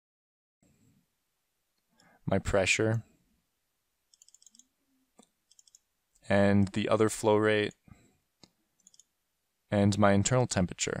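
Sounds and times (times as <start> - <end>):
faint computer mouse clicks: 4.1 - 5.8, 8.4 - 9.1.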